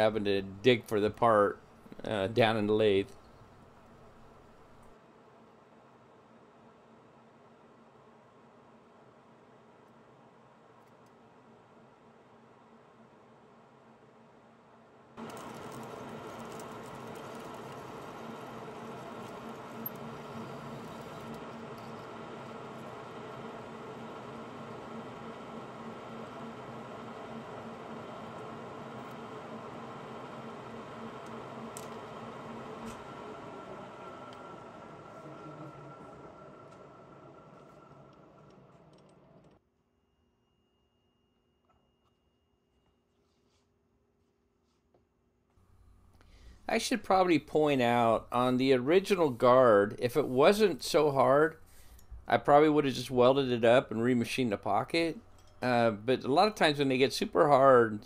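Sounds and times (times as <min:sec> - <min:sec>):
metal lathe humming with gear whine: 0:15.2 - 0:39.5.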